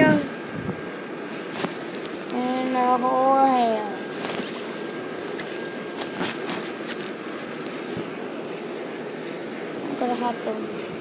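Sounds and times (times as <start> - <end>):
blower fan whirring: 0.0 - 11.0
rustles and clicks: 4.1 - 8.1.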